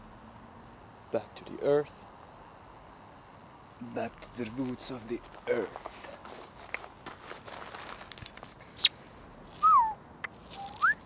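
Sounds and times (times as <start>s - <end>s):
steps on gravel: 4.0s - 8.7s, 9.5s - 11.0s
falling whistle-like tone: 9.6s - 10.0s, 10.6s - 11.0s.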